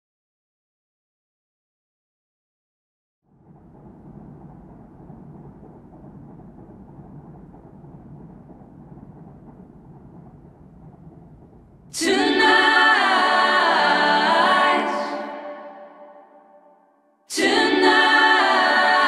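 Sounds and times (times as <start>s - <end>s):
faint steady low noise: 3.3s - 19.0s
voices singing a cappella: 12.0s - 16.4s, 17.3s - 19.0s.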